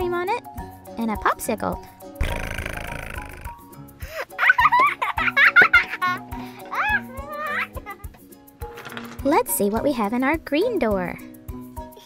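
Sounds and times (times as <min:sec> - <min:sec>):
background music: 0:00.0 - 0:12.0
rough buzzy sound: 0:02.2 - 0:03.6.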